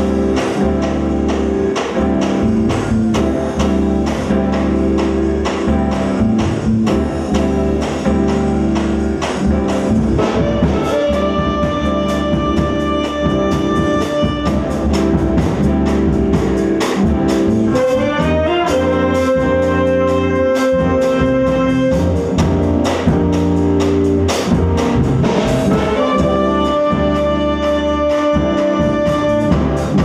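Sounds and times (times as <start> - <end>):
jazz band playing: 0.0 - 30.0
saxophone and trumpet long notes: 10.2 - 15.4, 17.6 - 22.7, 25.4 - 30.0.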